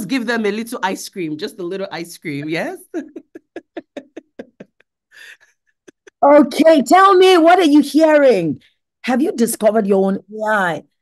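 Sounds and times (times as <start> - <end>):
person laughing: 2.9 - 6.4.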